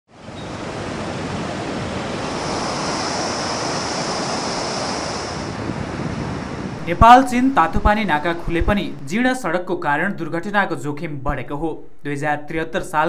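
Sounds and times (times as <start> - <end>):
high hiss: 2.0 - 9.2.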